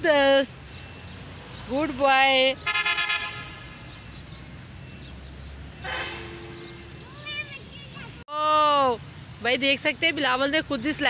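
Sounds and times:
vehicle horn tooting: 2.6 - 3.8, 5.8 - 8.0.

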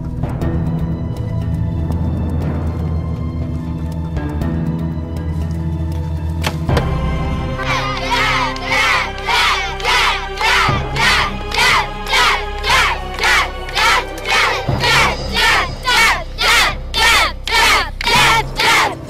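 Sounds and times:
background music with low drone: 0.0 - 19.0
children chanting in unison: 7.5 - 19.0.

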